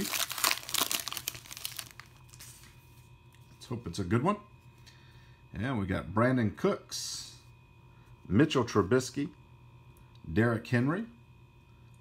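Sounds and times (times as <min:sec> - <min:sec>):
foil wrapper tearing and crinkling: 0:00.0 - 0:02.6.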